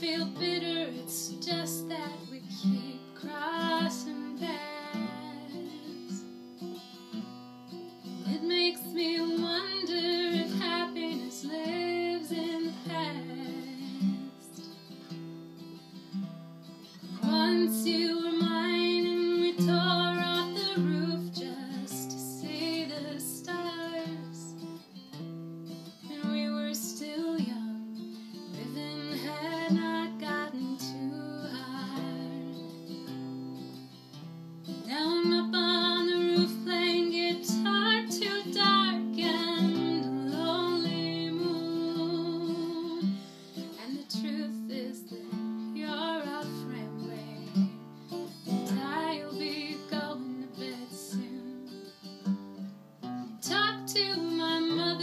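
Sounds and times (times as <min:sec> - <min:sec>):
woman singing: 0:00.0 - 0:06.3, 0:08.2 - 0:14.9, 0:17.1 - 0:24.8, 0:26.0 - 0:33.1, 0:34.8 - 0:52.2, 0:53.3 - 0:55.0
acoustic guitar: 0:00.0 - 0:55.0.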